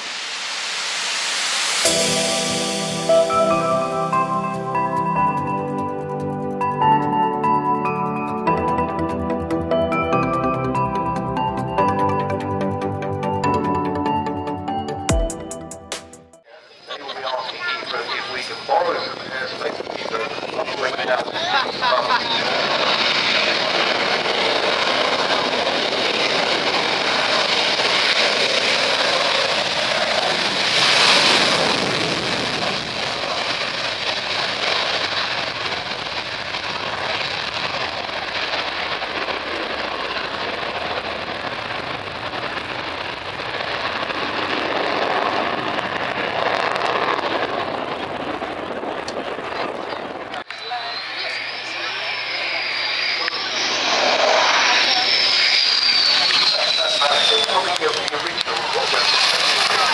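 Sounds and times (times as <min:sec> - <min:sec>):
jet fighter engines roaring: 0:00.0 - 0:13.0, 0:16.5 - 0:59.9
high engine whine: 0:00.0 - 0:15.3, 0:16.6 - 0:59.9.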